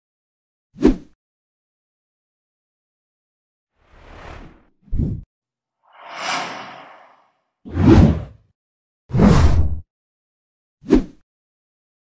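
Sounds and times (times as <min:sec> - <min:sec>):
whoosh: 0:05.9 - 0:08.0
deep swooshes: 0:05.9 - 0:08.1.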